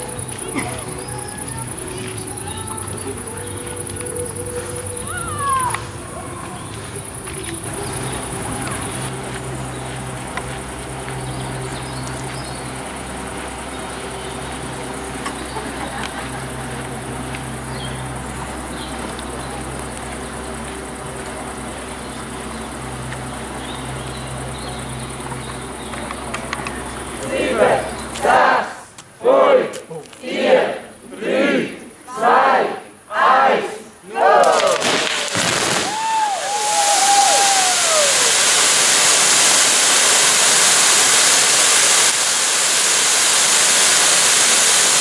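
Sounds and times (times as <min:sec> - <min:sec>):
low hum: 0:00.0 - 0:28.2
insects chirping: 0:00.0 - 0:45.0.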